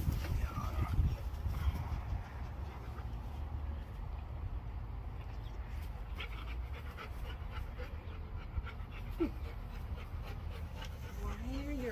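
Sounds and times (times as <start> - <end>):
dogs panting: 0.0 - 3.8, 5.0 - 11.9.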